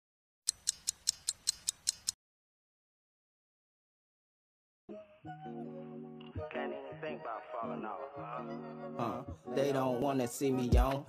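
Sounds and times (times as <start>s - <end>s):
sharp even ticks: 0.5s - 2.2s.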